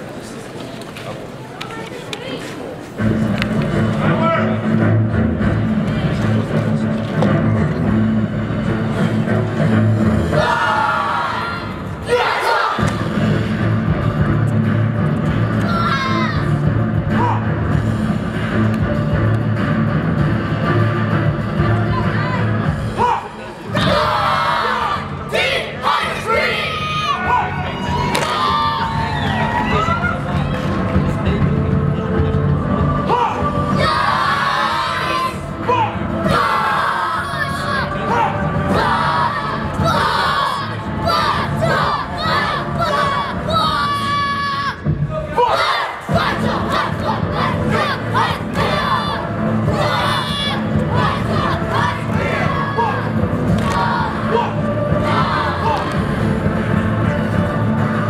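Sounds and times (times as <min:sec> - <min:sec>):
background music: 0:02.8 - 0:58.0
children shouting battle cries: 0:10.4 - 0:12.8, 0:15.6 - 0:16.4, 0:23.0 - 0:30.2, 0:33.1 - 0:55.8
cheering: 0:25.9 - 0:30.7.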